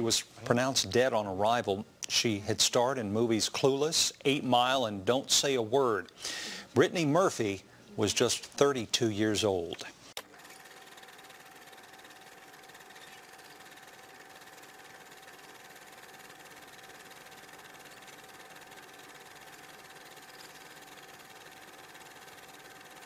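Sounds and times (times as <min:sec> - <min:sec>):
recording hiss: 0:00.0 - 0:10.2
thin steady tone: 0:10.9 - 0:23.0.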